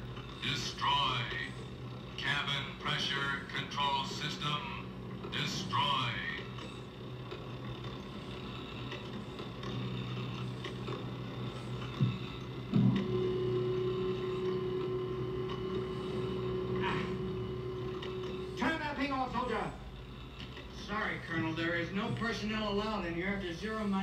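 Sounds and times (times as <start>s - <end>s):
low electronic hum: 0.0s - 24.0s
steady higher tone: 12.7s - 19.8s.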